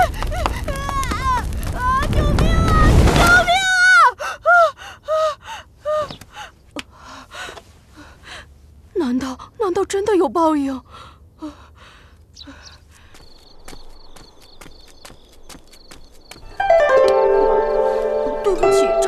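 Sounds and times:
child gasping and panting: 0.0s - 0.8s
fire noise: 0.0s - 4.1s, 12.5s - 18.8s
child crying out for help: 0.7s - 4.2s.

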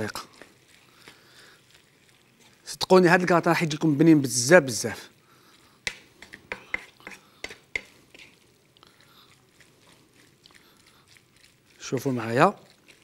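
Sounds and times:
spatula scraping frying pan: 5.9s - 8.4s.

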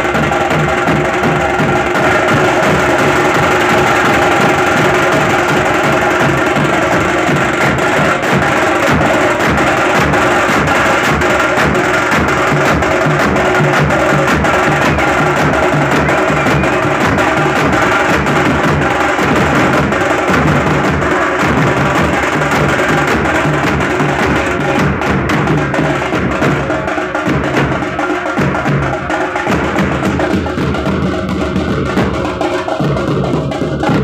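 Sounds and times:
steel drum band playing: 0.0s - 34.0s.

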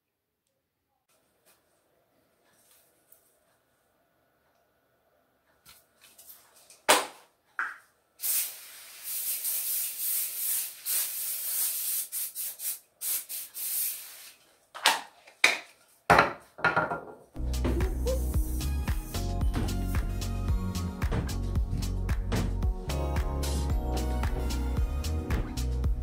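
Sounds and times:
aerosol can spraying: 8.2s - 14.4s.

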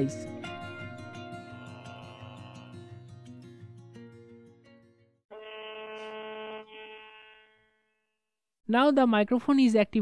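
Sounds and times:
buzzy electronic phone tone: 1.4s - 3.1s, 5.3s - 8.1s.

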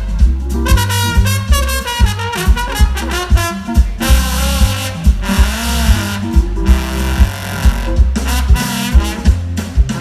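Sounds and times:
jazz band playing live: 0.0s - 10.0s
trombone melody: 0.0s - 10.0s.

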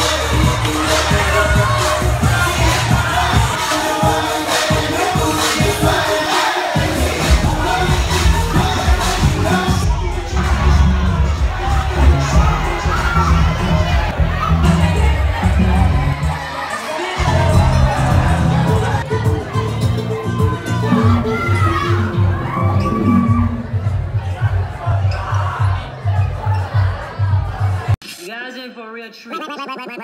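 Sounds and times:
crowd shouting and cheering: 0.0s - 28.3s
dance music with heavy bass: 0.0s - 28.4s.

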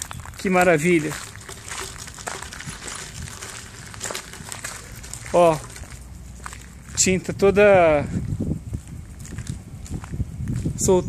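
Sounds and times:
low outdoor rumble: 0.0s - 11.0s
soft footsteps on concrete: 0.0s - 11.0s.

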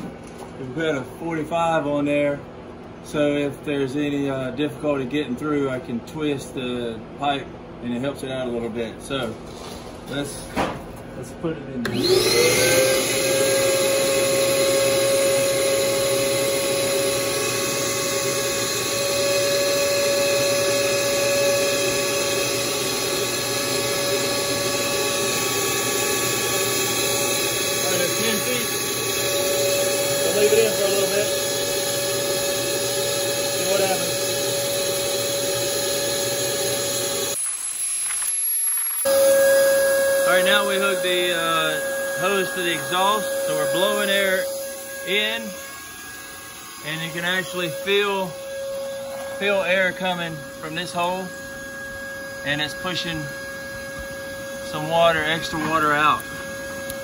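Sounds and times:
shop vac whining: 0.0s - 57.0s.

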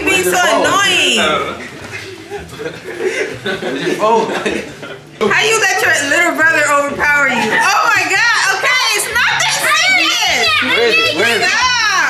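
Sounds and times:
children shrieking and shouting: 9.1s - 11.9s.

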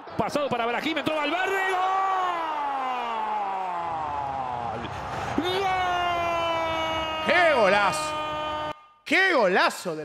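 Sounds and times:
man shouting long goal cry: 5.4s - 8.9s.

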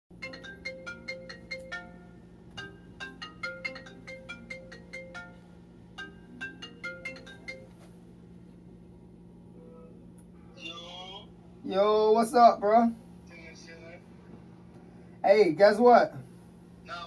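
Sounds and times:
chiming phone ringtone: 0.1s - 7.9s.

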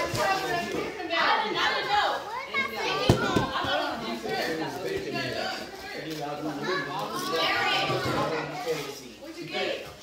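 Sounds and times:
people and children chattering: 0.0s - 10.0s.

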